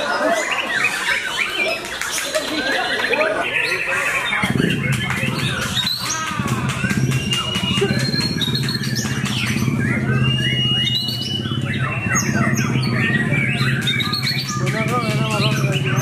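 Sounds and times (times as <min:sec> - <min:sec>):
bird singing whistles and trills: 0:00.0 - 0:16.0.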